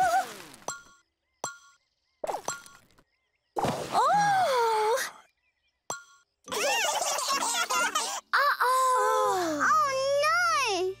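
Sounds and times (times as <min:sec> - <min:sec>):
cartoon falling vocal sound: 0:00.0 - 0:00.5.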